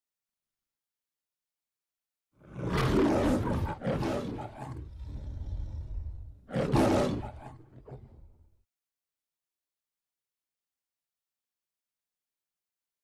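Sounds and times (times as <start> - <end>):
lion roaring: 2.4 - 8.5.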